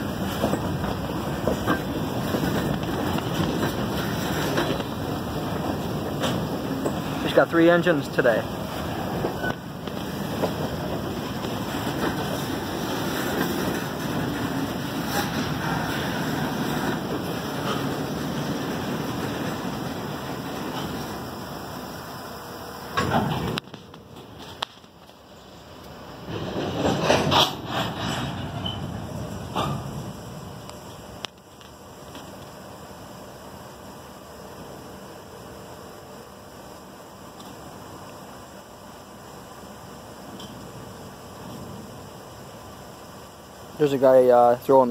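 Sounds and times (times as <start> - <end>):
freight cars rolling on rails: 0.0 - 44.9.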